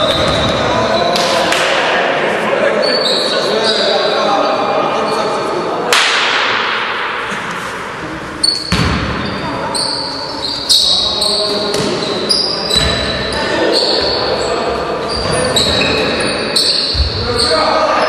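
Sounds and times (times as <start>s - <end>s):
basketball bouncing: 8.7s - 9.3s.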